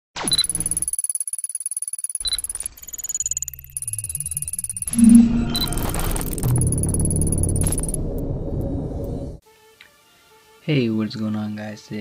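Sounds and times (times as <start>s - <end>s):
stuttering digital blips: 0.2s - 8.3s
high-pitched electronic tones: 2.2s - 9.4s.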